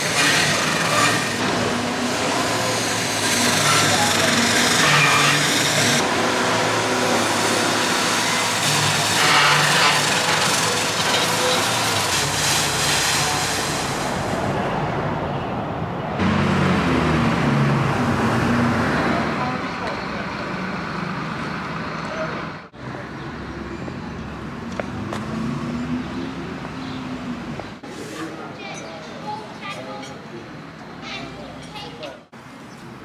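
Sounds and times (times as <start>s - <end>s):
road traffic: 0.0s - 33.0s
people talking: 19.0s - 20.7s.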